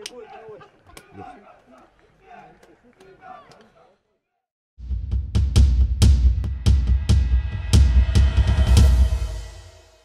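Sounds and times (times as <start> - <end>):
bass drum and cymbal hits: 4.8 - 10.0.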